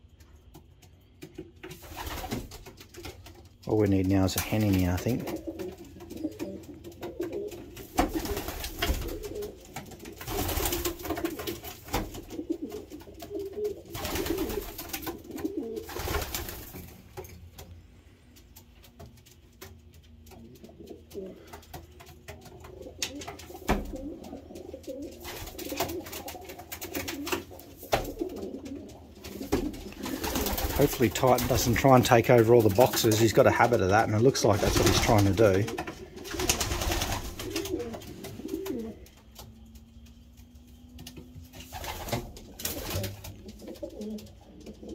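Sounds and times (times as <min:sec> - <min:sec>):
pigeons cooing: 0:04.7 - 0:16.9, 0:20.1 - 0:44.9.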